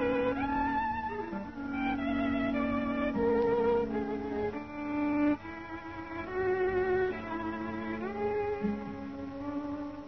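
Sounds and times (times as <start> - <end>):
low held accompaniment note: 0.0 - 10.0
solo violin melody: 0.0 - 10.0.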